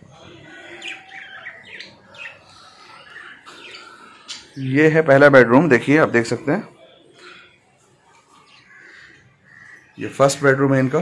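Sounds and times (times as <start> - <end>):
budgerigars chirping: 0.6 - 5.3.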